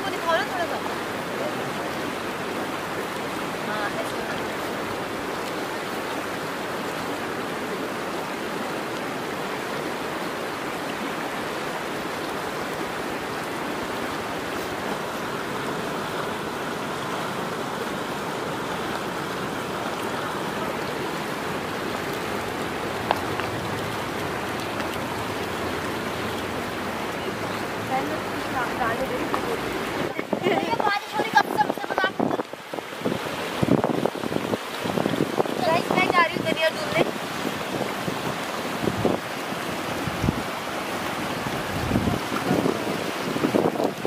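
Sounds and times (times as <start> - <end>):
river rushing over rocks: 0.0 - 44.0.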